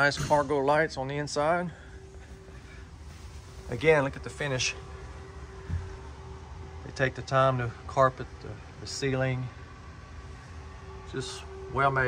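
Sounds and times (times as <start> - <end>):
faint steady tone: 0.0 - 12.0
low background hum: 0.0 - 12.0
soft low thump: 5.5 - 6.1.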